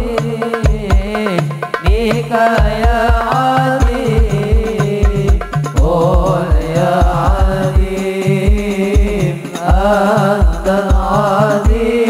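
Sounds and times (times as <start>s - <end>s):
frame drums beating: 0.0s - 12.0s.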